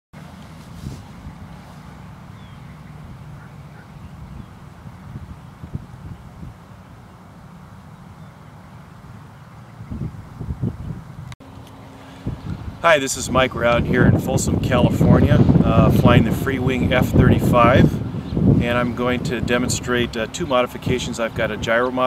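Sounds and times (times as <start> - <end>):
wind buffeting microphone: 0.6 - 7.3, 9.6 - 11.4, 12.1 - 22.0.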